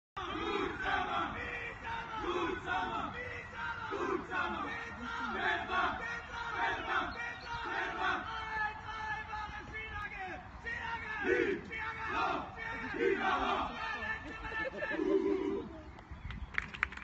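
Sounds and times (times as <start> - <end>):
players chanting in unison: 0.2 - 14.1.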